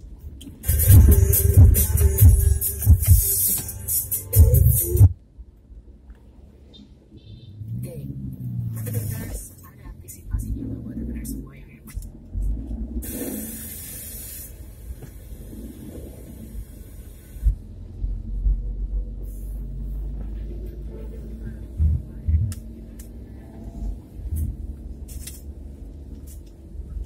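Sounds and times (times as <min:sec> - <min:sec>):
car cabin rumble: 0:00.0 - 0:05.2, 0:14.6 - 0:27.0.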